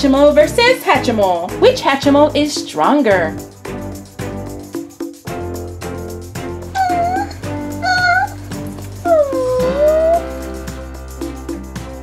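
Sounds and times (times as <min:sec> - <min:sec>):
background music: 0:00.0 - 0:12.0
pitched creature calls: 0:06.8 - 0:08.4, 0:09.0 - 0:10.4.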